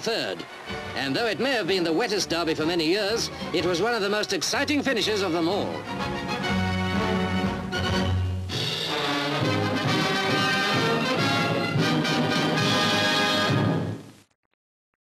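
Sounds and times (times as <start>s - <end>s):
closing theme music: 0.4s - 14.1s.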